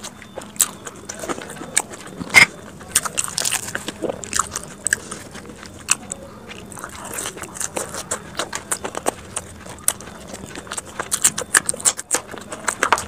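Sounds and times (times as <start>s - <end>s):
crisp pastry cracking and crunching: 0.0s - 13.0s.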